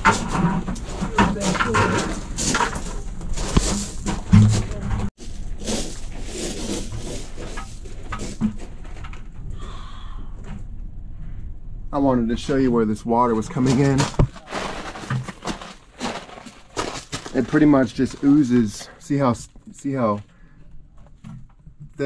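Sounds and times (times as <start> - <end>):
gravel crunching underfoot: 0.0 - 11.4, 12.5 - 21.2.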